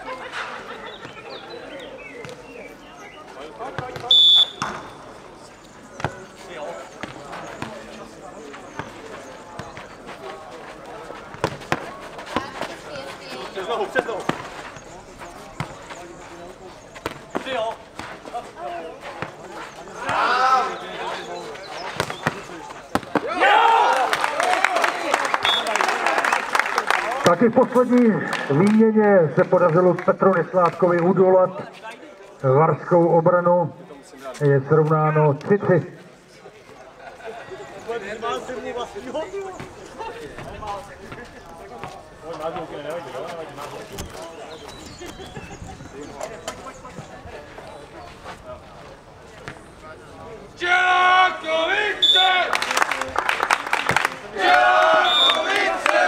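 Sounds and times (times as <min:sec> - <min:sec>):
players calling: 0:00.0 - 0:56.0
shouting and cheering: 0:23.2 - 0:27.3, 0:50.6 - 0:52.8, 0:53.8 - 0:56.0.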